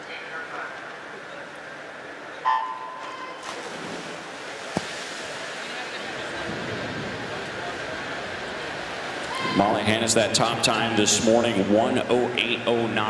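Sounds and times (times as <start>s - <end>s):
crowd noise: 0.0s - 13.0s
swimmers diving splash: 3.0s - 9.6s
water washing: 3.4s - 11.2s.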